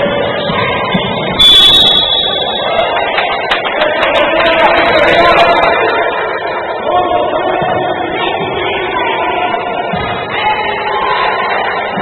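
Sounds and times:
basketball hall background noise: 0:00.0 - 0:12.0
loud high-pitched signal blast: 0:01.4 - 0:02.6.

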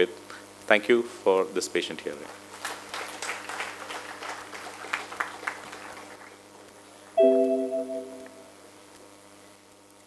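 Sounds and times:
audience applauding: 0:02.2 - 0:07.2.

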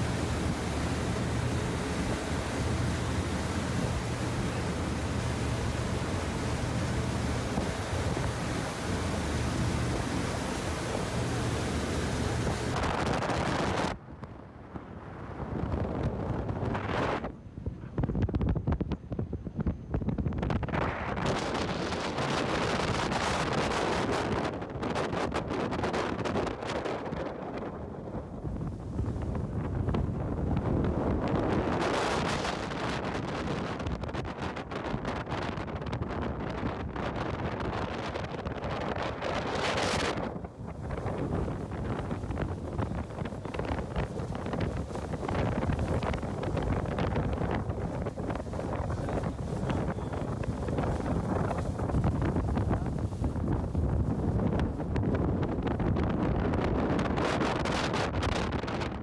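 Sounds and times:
water rushing along hull: 0:00.0 - 0:59.0
wind buffeting microphone: 0:00.0 - 0:59.0.

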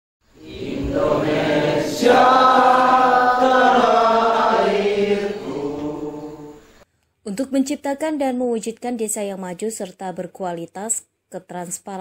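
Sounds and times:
group singing in unison: 0:00.3 - 0:06.8.

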